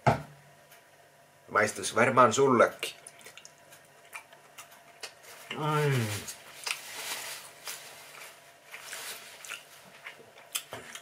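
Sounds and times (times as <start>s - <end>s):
person chewing food: 2.9s - 5.6s, 6.3s - 7.0s, 8.1s - 11.0s
person humming: 5.5s - 6.3s.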